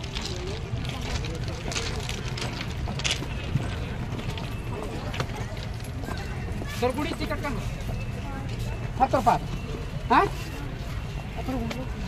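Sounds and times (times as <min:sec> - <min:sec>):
footsteps on marble steps: 0:00.0 - 0:08.8
murmur of voices: 0:00.0 - 0:12.0.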